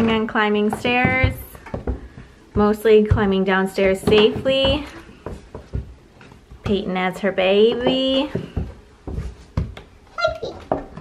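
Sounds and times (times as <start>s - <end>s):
toddler thumping on wooden stairs: 7.7s - 11.0s.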